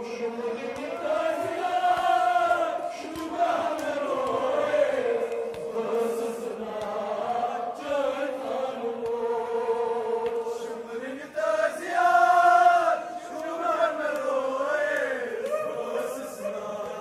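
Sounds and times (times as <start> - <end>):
men chanting in held notes: 0.0 - 17.0.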